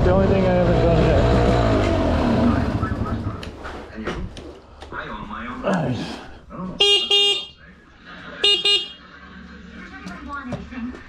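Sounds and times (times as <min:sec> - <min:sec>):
vehicle horn double beeps: 0:06.8 - 0:07.6.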